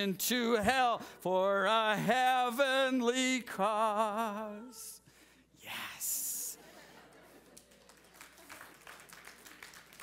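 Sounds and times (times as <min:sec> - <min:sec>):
person singing: 0:00.1 - 0:05.0.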